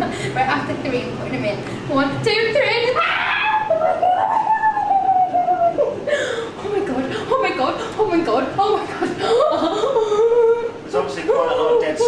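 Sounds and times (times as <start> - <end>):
person squealing: 3.0 - 6.0.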